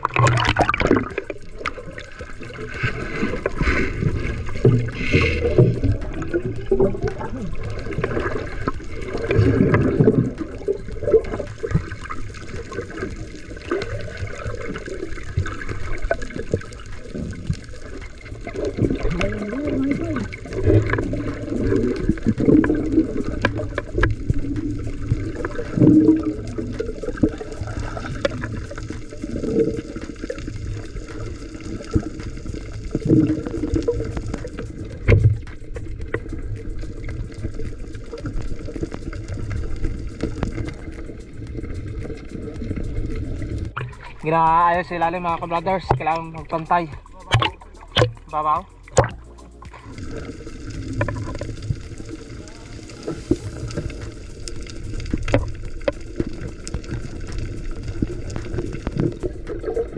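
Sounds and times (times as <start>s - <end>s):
underwater bubbling and gurgling: 0.0s - 59.9s
water splash: 0.0s - 59.9s.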